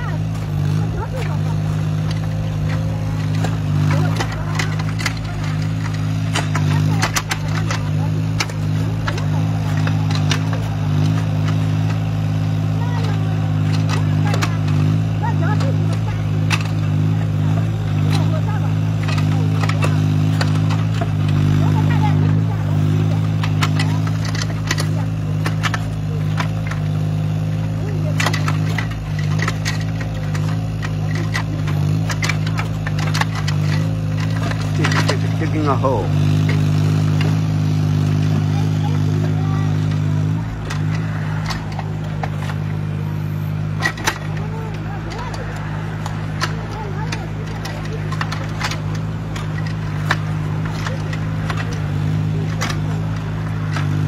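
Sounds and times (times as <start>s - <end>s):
excavator diesel engine running: 0.0s - 54.0s.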